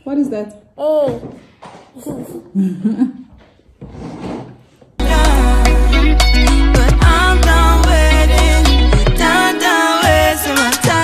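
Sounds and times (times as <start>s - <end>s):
girl laughing: 2.0s - 3.3s.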